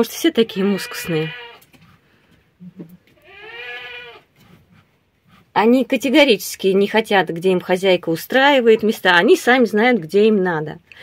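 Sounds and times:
goat bleating: 0.5 - 1.7, 3.2 - 4.3.

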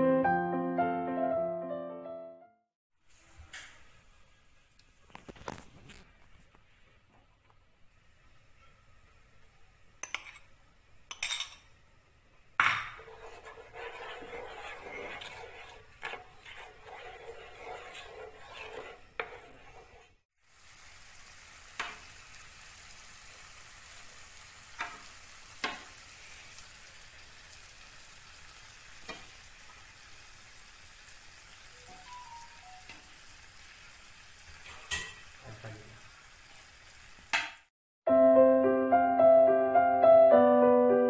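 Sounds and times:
gravy simmering with faint sizzle: 3.1 - 37.5.

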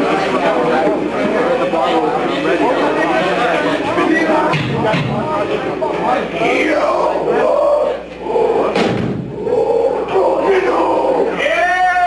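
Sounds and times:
heavy drum hit: 8.7 - 9.4.

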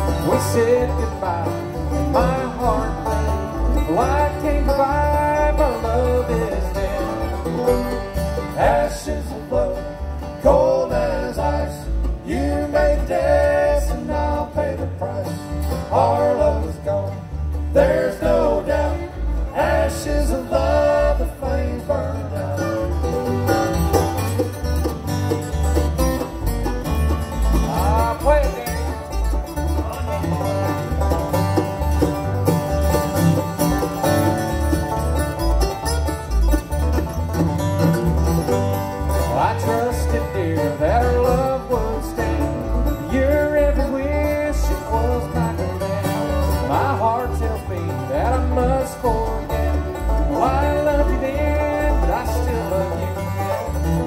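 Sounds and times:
acoustic guitar: 0.0 - 54.0
banjo: 0.0 - 54.0
fiddle: 0.0 - 54.0
mandolin: 0.0 - 54.0
upright bass: 0.0 - 54.0.

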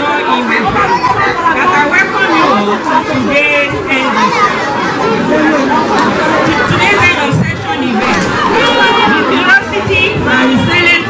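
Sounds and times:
overlapping voices chattering: 0.0 - 11.0.

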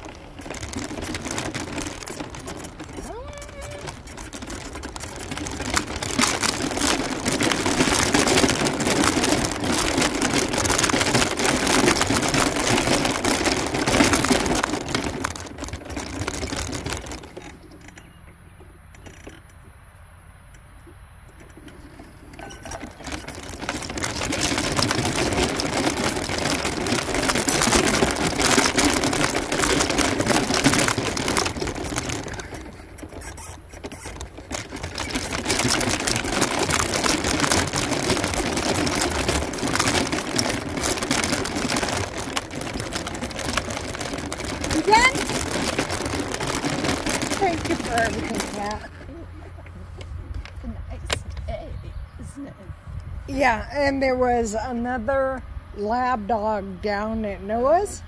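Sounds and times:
powered wheelchair motor whir: 0.0 - 19.7, 20.5 - 51.6.

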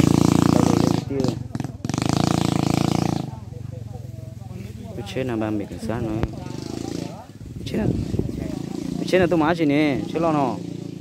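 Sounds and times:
faint murmuring voices: 0.0 - 11.0
loud motorbike engine: 0.0 - 11.0.

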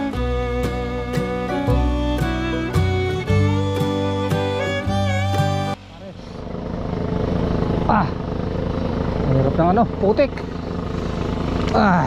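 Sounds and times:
small engine running: 0.0 - 12.0.

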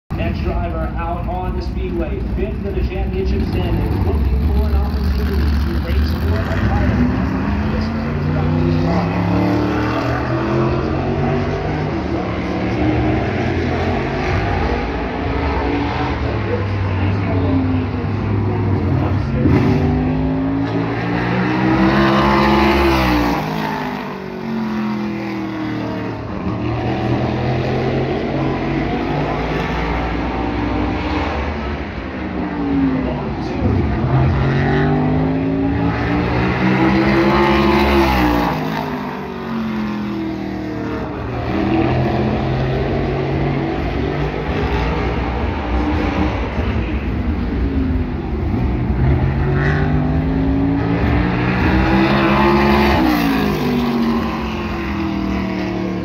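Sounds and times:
race car engine passing: 1.2 - 56.0.

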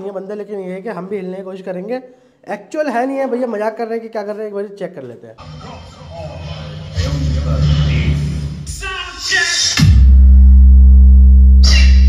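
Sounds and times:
held deep bass note: 5.4 - 8.9, 9.8 - 12.0
loud music with heavy bass: 5.4 - 12.0.

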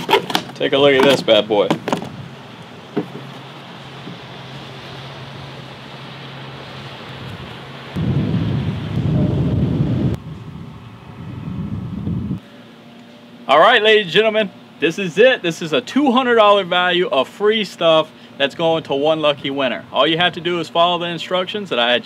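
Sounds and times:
wind on microphone: 7.1 - 12.4.

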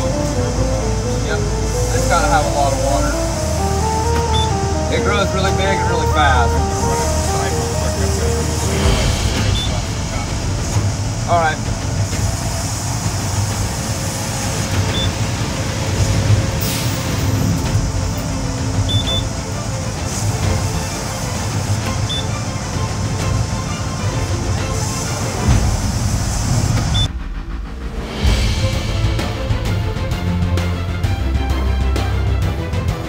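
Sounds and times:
band sawmill cutting wood: 0.0 - 26.9
background music: 0.0 - 33.0
short high beeps: 4.3 - 4.6, 14.9 - 15.1, 18.9 - 19.3.

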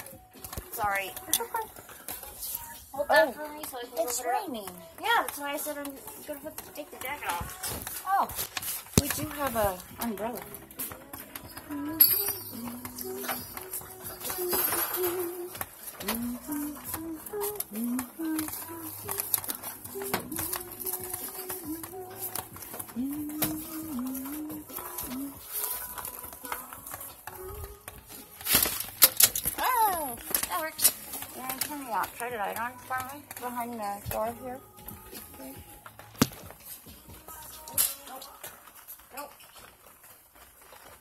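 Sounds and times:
knocks and handling noise: 0.0 - 41.0.

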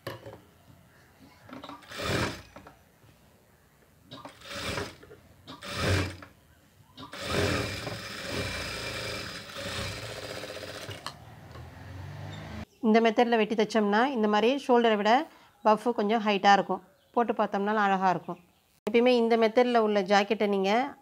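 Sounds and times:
sewing machine stitching: 1.7 - 2.7, 4.1 - 6.3, 7.0 - 11.2.

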